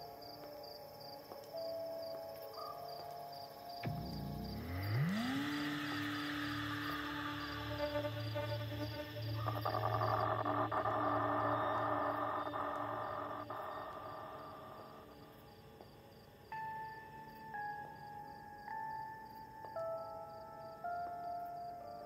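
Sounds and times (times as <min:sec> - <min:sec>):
droning wash: 0:03.9 - 0:15.0
held high notes: 0:03.9 - 0:15.2.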